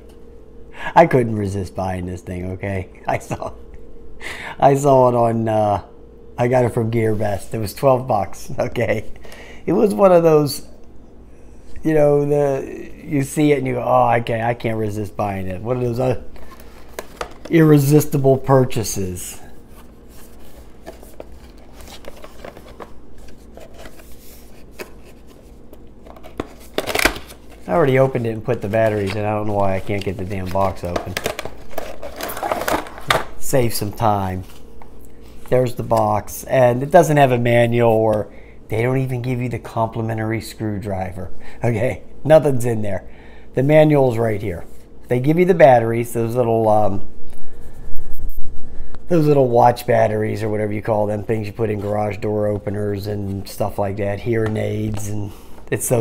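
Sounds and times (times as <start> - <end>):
cardboard clicks and rustles: 15.9 - 17.9, 19.8 - 33.4.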